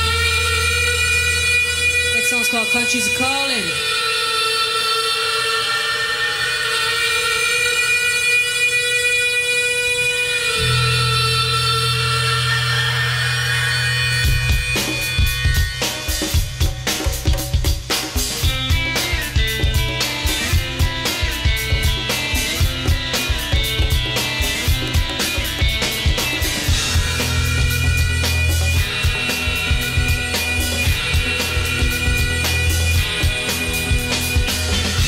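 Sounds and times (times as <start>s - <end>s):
sustained chords: 9.9s - 16.6s
low bass note: 10.6s - 14.6s
drums playing a steady beat: 14.2s - 35.0s.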